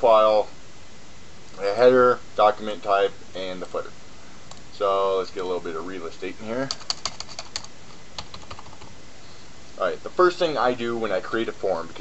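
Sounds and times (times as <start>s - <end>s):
computer keyboard keystrokes: 6.7s - 8.9s.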